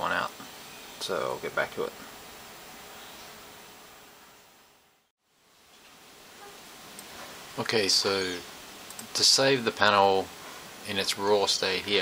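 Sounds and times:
room and microphone hiss: 0:00.0 - 0:12.0.

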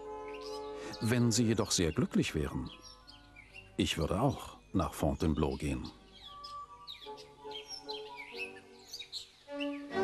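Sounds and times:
birds chirping and twittering: 0:00.0 - 0:10.0
soft background music: 0:00.0 - 0:10.0.

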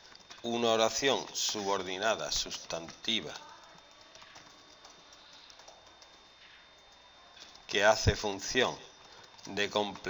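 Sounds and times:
keyboard keystrokes: 0:00.0 - 0:07.7.

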